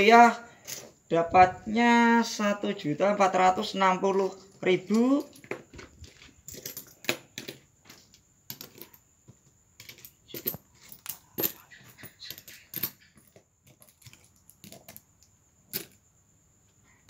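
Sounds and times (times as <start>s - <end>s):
coins clinking on a table: 4.2s - 9.1s, 9.8s - 15.1s, 15.7s - 16.0s.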